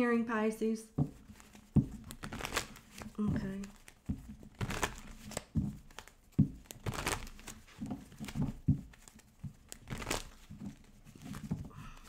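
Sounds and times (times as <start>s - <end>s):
cards rustling and slapping: 0.9s - 12.0s.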